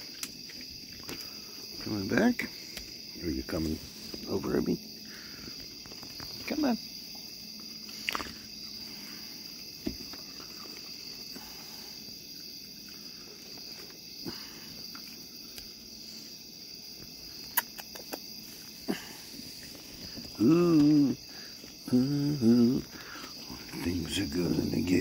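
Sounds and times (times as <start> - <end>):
crickets chirping: 0.0 - 25.0.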